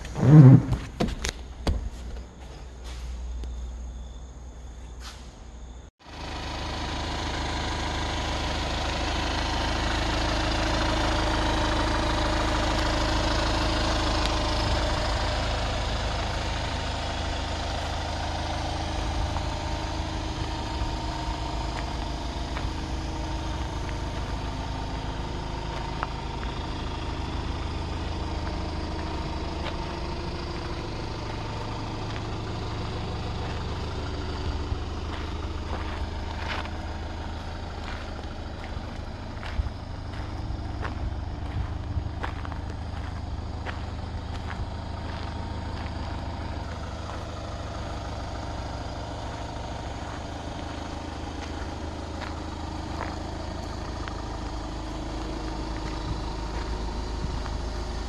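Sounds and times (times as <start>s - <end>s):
van engine idling: 0.0s - 58.0s.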